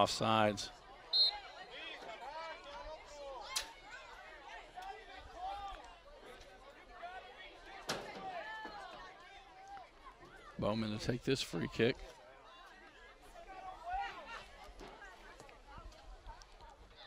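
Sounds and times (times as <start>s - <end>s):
referee's whistle blast: 1.1s - 1.4s.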